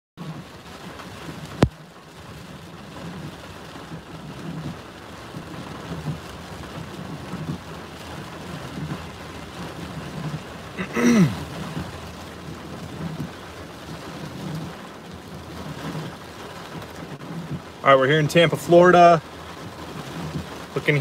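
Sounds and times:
rain and wind on a windshield: 0.2s - 21.0s.

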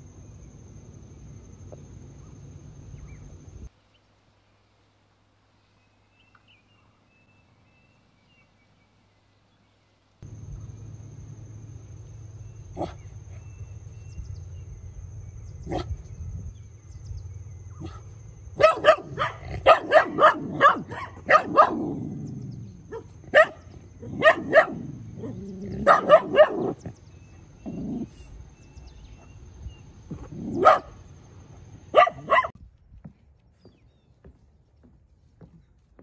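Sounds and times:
dog barking: 12.8s - 13.5s, 15.6s - 16.0s, 17.8s - 22.3s, 22.9s - 26.9s, 30.4s - 31.0s, 31.9s - 32.6s.

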